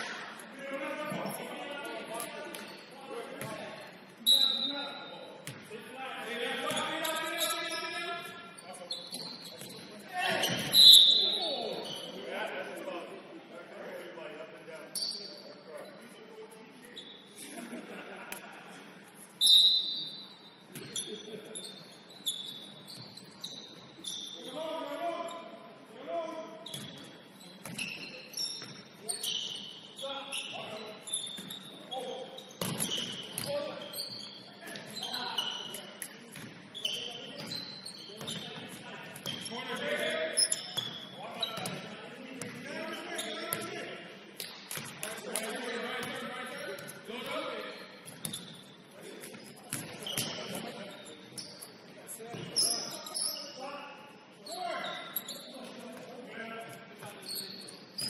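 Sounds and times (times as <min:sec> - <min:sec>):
sneakers squeaking: 0:00.0 - 0:12.3, 0:14.8 - 0:17.7, 0:18.3 - 0:58.0.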